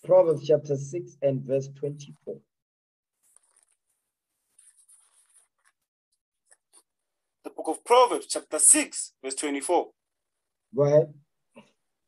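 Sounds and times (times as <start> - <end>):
faint scratchy rustles: 3.2 - 5.8.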